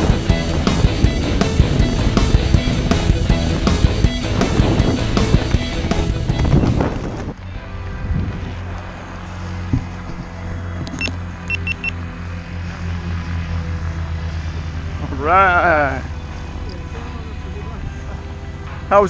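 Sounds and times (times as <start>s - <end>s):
backing music: 0.0s - 10.6s
low engine hum: 0.0s - 19.0s
short high-pitched beeps: 11.0s - 12.0s.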